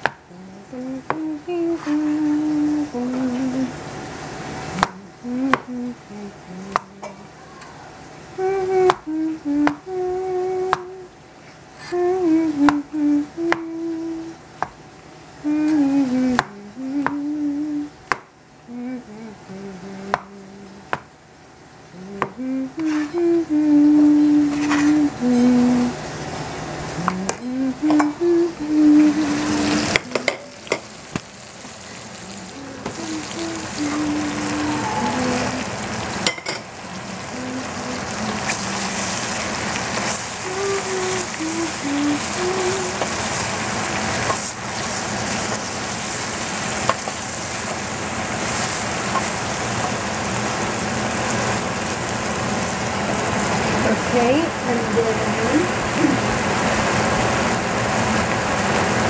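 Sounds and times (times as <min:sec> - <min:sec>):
person humming: 0:00.0 - 0:03.8, 0:04.7 - 0:11.2, 0:11.8 - 0:14.4, 0:15.4 - 0:18.0, 0:18.6 - 0:21.0, 0:21.9 - 0:26.1, 0:26.9 - 0:31.2, 0:32.1 - 0:44.2, 0:53.8 - 0:56.4
mushrooms sizzling in a pan: 0:00.0 - 0:18.7, 0:19.4 - 0:59.0.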